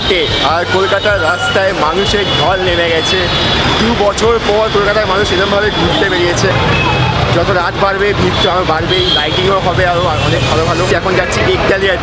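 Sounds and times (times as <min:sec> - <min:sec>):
passing traffic and buses: 0:00.0 - 0:12.0
people talking: 0:00.0 - 0:12.0.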